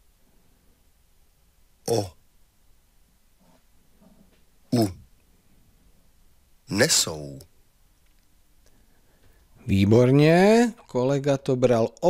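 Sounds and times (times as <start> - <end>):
person saying a letter sound: 4.7 - 5.0.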